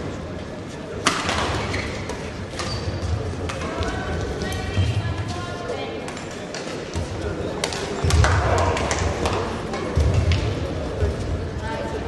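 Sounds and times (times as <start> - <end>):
voices echoing in hall: 0.0 - 12.0.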